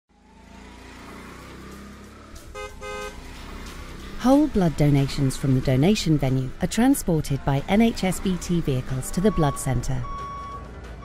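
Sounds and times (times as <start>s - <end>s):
rumble of car engines: 0.1s - 11.0s
car horn tooting: 2.4s - 3.4s.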